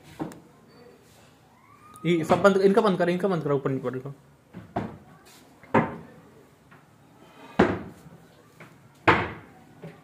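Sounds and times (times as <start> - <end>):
cabinet doors knocking shut: 7.6 - 8.0, 9.0 - 9.5.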